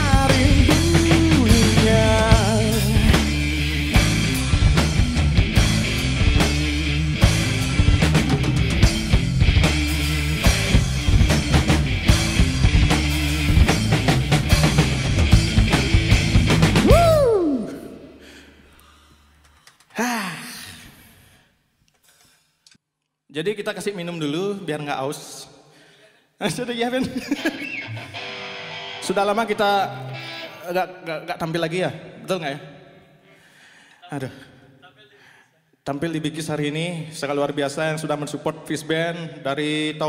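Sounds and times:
electric guitar notes and chord: 0.0s - 17.1s, 27.5s - 31.0s
drum kit with cymbals: 0.0s - 17.2s
rock band playing live: 0.0s - 17.2s, 27.6s - 30.7s.

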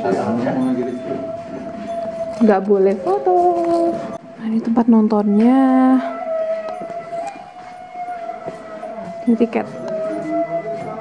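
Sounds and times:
high sustained tone: 0.0s - 11.0s.

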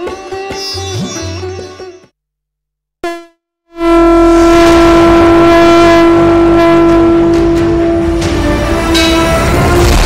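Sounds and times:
loud blown horn note: 3.0s - 9.6s.

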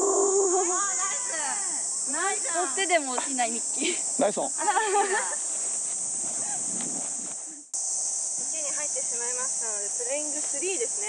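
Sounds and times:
insects buzzing: 0.0s - 11.0s.

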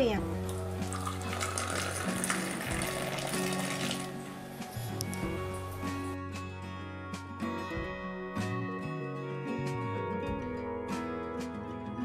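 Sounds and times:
background music: 0.0s - 12.0s
tea pouring into cup: 0.4s - 4.4s.

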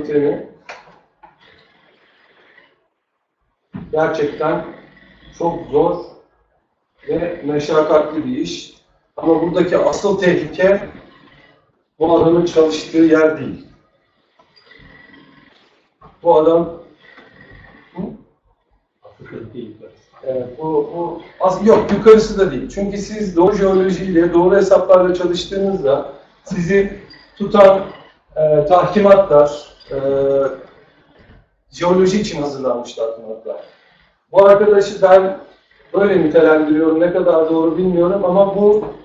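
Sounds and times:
faint room noise: 0.0s - 39.0s
man asking a question: 19.2s - 27.8s.

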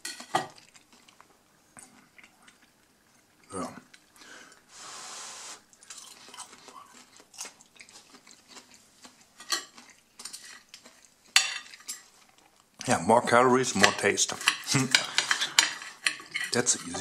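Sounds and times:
cutlery clinking on a plate: 0.0s - 0.7s, 9.4s - 12.1s, 13.7s - 17.0s.

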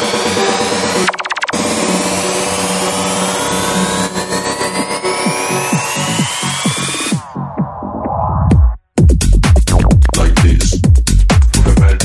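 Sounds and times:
rising noise sweep: 0.0s - 8.4s
kick drum beats: 7.4s - 12.0s.

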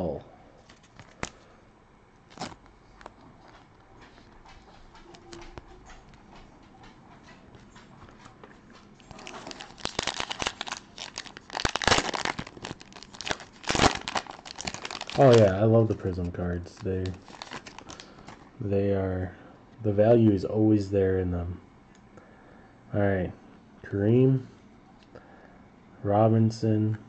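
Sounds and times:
foil wrapper tearing and crinkling: 2.3s - 2.6s, 9.1s - 15.6s, 16.7s - 18.4s.

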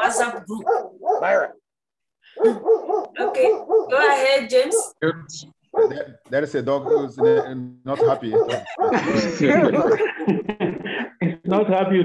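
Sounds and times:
dog barking rapidly: 0.6s - 1.5s, 2.4s - 4.0s, 5.7s - 6.1s, 6.7s - 9.0s.

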